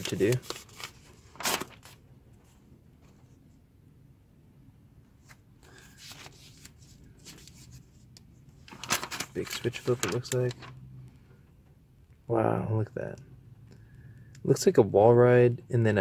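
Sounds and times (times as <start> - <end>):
magazine page turning: 0.0 - 2.0, 5.2 - 8.0, 8.6 - 10.8.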